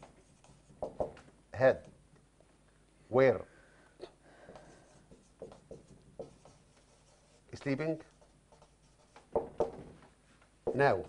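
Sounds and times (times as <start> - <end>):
marker writing on whiteboard: 0.0 - 1.2, 4.5 - 9.9.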